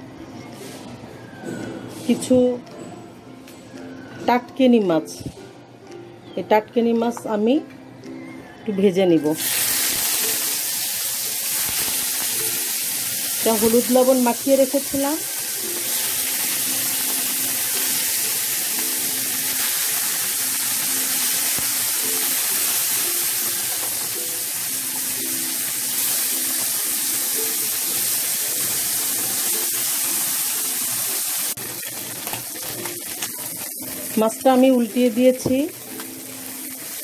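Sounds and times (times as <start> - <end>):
fish sizzling in hot oil: 9.4 - 37.0.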